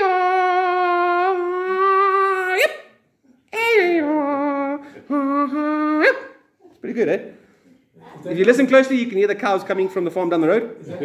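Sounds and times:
man singing high cattle call: 0.0 - 2.9, 3.5 - 6.5.

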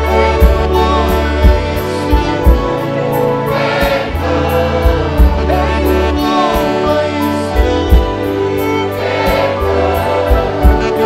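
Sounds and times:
drum beat: 0.0 - 2.9, 3.6 - 6.8, 7.6 - 8.3, 9.2 - 11.0
deep bass line: 0.0 - 11.0
person singing: 0.0 - 11.0
violins: 0.0 - 11.0.

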